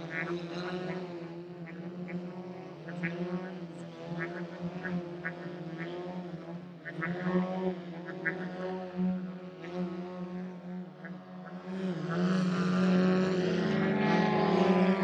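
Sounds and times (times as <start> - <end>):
model airplane engines droning: 0.0 - 15.0.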